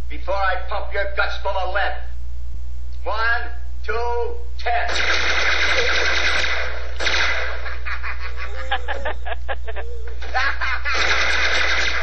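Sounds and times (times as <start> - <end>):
steady low hum: 0.0 - 12.0
submachine gun fire: 4.9 - 7.9, 10.9 - 12.0.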